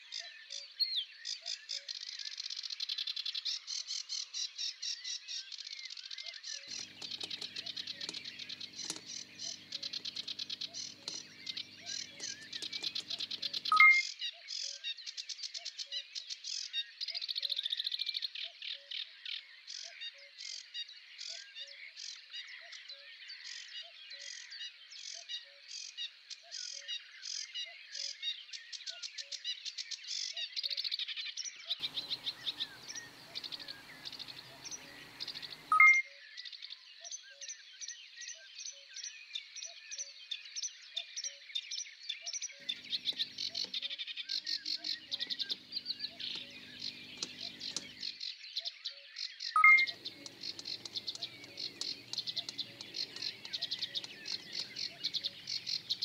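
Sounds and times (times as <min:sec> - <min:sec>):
birds and insects chirping: 0:06.6 - 0:14.0, 0:31.8 - 0:36.0, 0:42.6 - 0:48.2, 0:49.6 - 0:56.0.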